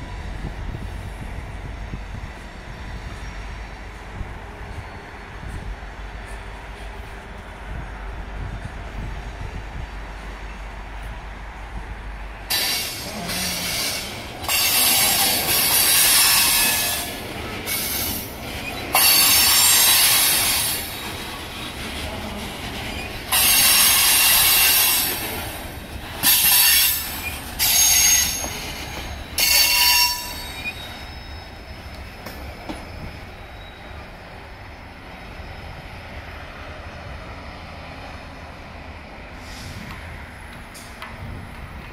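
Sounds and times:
train cars rumbling: 0.0s - 41.9s
train wheels squealing on rails: 1.6s - 7.2s, 12.4s - 38.5s, 39.2s - 41.6s.

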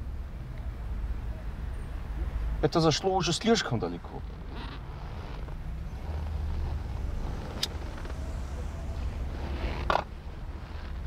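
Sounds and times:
car engine rumble: 0.0s - 11.0s
road noise: 0.0s - 11.0s.

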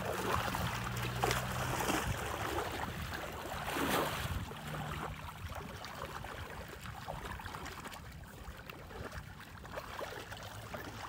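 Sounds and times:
cow splashing through water: 0.0s - 11.0s.

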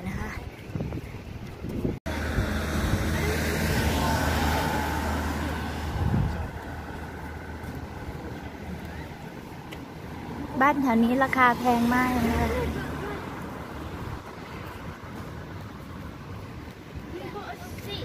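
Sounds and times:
vehicle passing: 2.1s - 18.0s.

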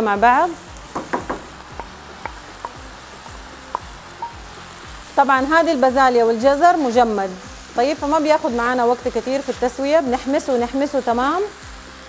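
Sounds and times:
meat sizzling in a frying pan: 0.0s - 12.0s.

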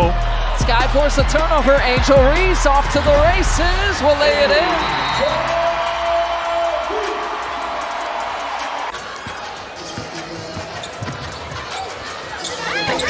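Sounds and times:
arena noise: 0.0s - 13.0s
sneakers squeaking: 8.6s - 13.0s.

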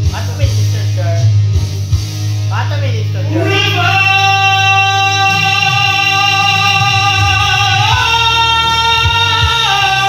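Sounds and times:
backing music track: 0.0s - 10.0s
man singing into microphone: 3.3s - 10.0s.

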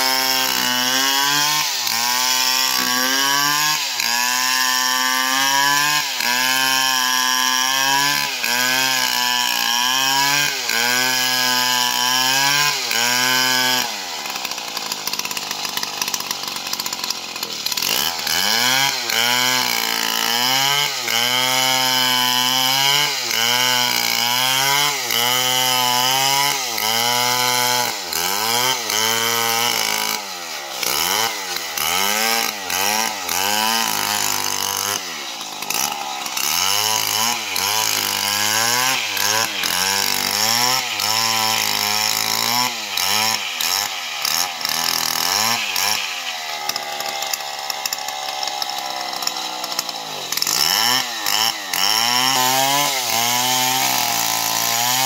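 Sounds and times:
chainsaw cutting through log: 0.0s - 55.0s.

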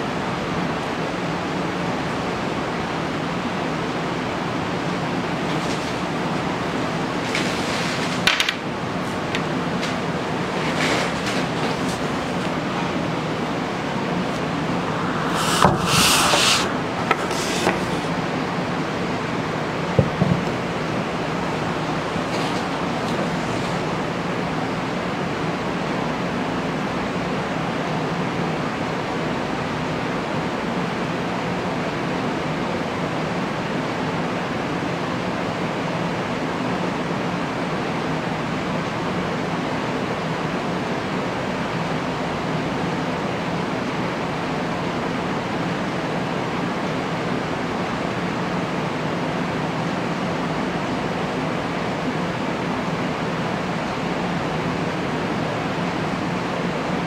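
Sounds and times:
steady hiss: 0.0s - 25.6s.

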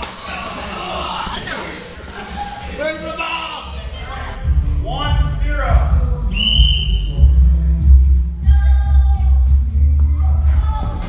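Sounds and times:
heavy low rumble: 3.8s - 11.0s
music with heavy bass: 4.0s - 11.0s
sharp whistle blast: 6.3s - 7.3s.

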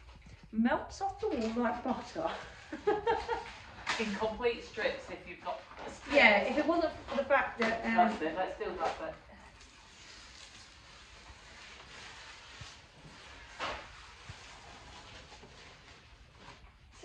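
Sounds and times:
wallpaper peeling rustle: 1.1s - 17.0s.

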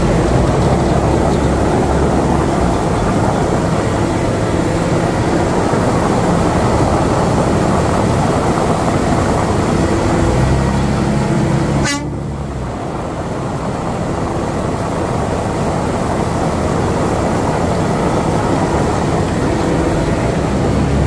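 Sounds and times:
engine and mixing machinery: 0.0s - 21.0s.

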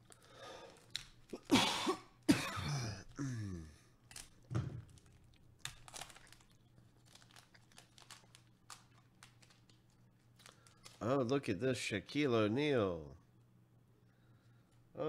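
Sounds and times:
foil wrapper crinkling: 0.0s - 2.3s, 4.0s - 11.3s
person making low vocal noise: 2.7s - 3.8s.

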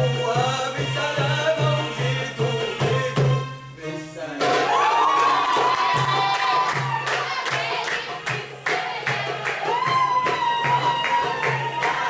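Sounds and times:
folk music: 0.0s - 5.8s
hand drum beat: 4.4s - 12.0s.

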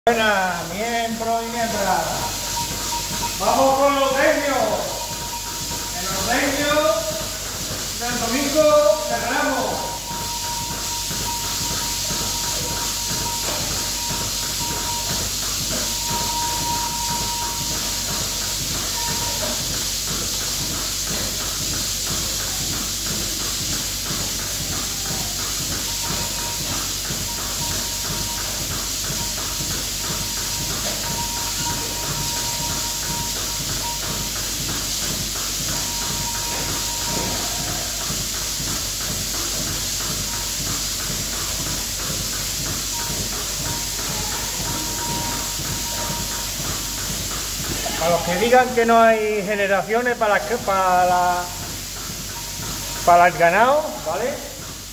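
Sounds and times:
thin high tone: 0.1s - 20.3s, 24.9s - 34.9s, 35.7s - 38.0s, 42.9s - 54.5s
milking machine vacuum hiss: 0.1s - 54.9s.

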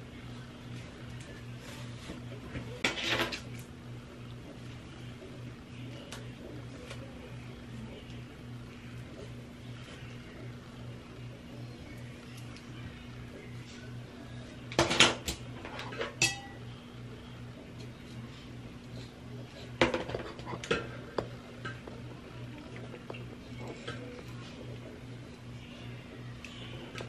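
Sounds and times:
low steady hum: 0.0s - 27.0s.

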